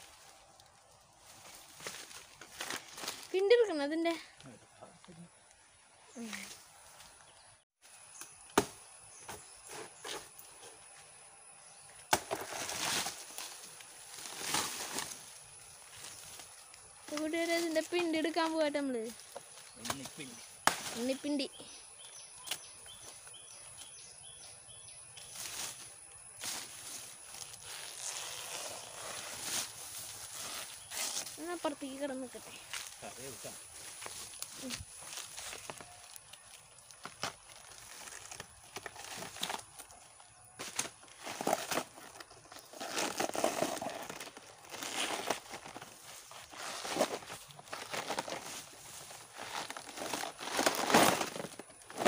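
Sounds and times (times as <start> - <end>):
dry leaves rustling: 0.0 - 3.8, 12.1 - 21.6, 25.2 - 52.0
machete chopping banana stem: 8.2 - 10.3, 12.1 - 12.8, 19.8 - 21.0.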